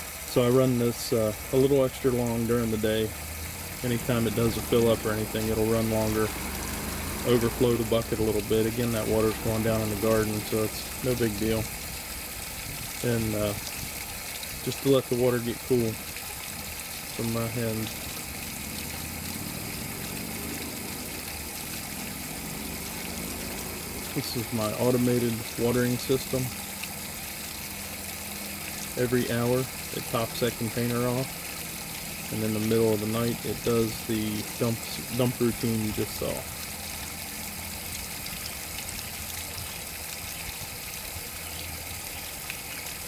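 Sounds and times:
hose water running into dish: 0.0s - 43.0s.

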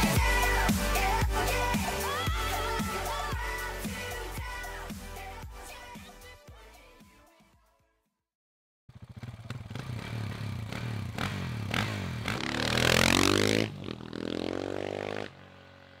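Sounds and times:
dirt bike engine revving: 8.9s - 16.0s.

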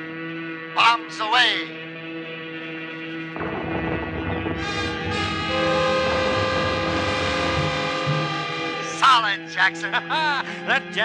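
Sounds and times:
low rumbling sound effect: 3.4s - 9.0s
orchestral horn-like chords: 3.4s - 10.6s.

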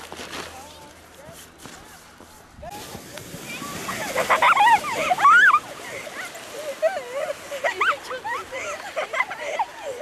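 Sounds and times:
sleds scraping on snow: 0.0s - 10.0s
children calling and laughing: 0.5s - 10.0s.

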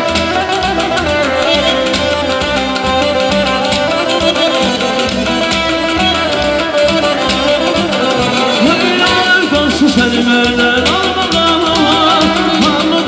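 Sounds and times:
band playing instrumental music: 0.0s - 13.0s
steady drum beat: 0.0s - 13.0s.

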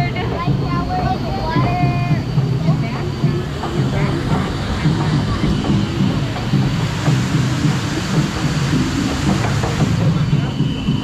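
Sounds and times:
conveyor lift rumbling and rattling: 0.0s - 11.0s.

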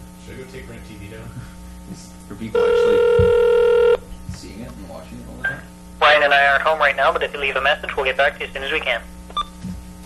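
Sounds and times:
telephone ringback tone: 2.6s - 4.0s.

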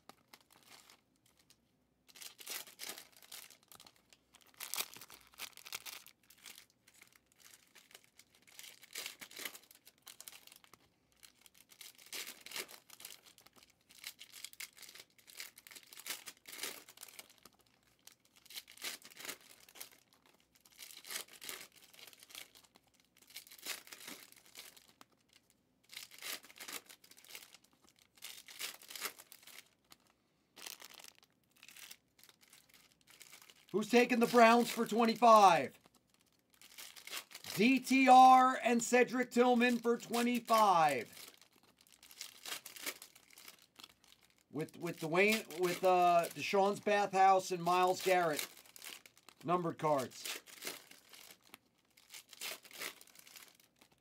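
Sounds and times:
foil wrappers tearing and crinkling: 0.0s - 34.8s, 35.7s - 37.6s, 40.6s - 54.0s
cards being handled: 44.6s - 48.6s.

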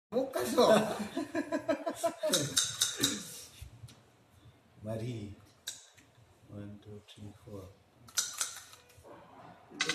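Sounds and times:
men laughing: 0.4s - 2.7s.

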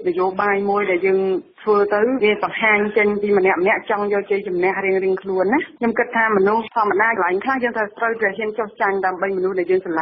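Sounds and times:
person narrating news: 0.0s - 10.0s.

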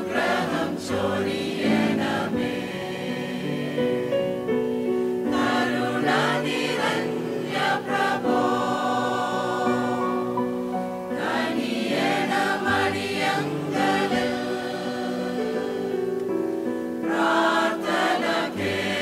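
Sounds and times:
mixed choir singing chords: 0.0s - 19.0s.

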